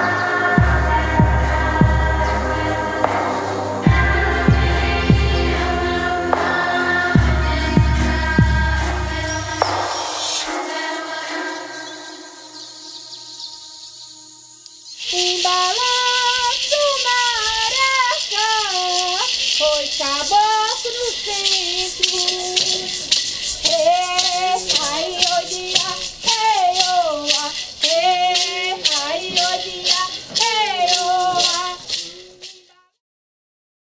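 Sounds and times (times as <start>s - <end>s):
high voice chanting: 0.0s - 13.8s, 15.0s - 32.8s
gourd rattle shaken: 8.0s - 12.8s, 14.9s - 33.0s.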